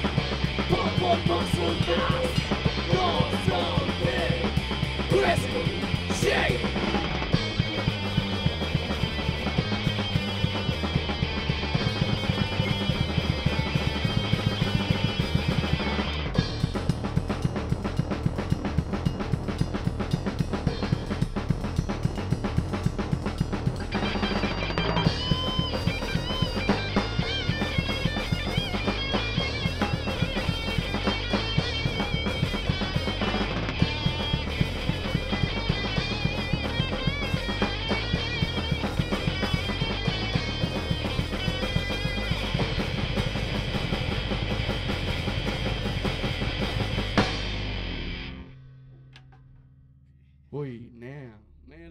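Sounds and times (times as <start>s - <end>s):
electric guitar: 0.0s - 16.9s, 23.6s - 49.6s
drum kit fast beat: 0.0s - 48.3s
high guitar lead with bent notes: 0.0s - 49.8s
bass guitar: 0.0s - 51.9s.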